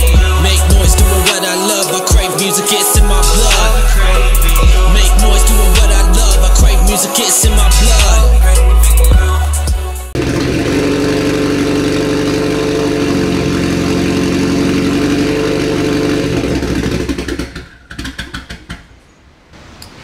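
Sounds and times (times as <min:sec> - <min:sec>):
car engine running: 0:00.0 - 0:01.3, 0:03.0 - 0:18.7.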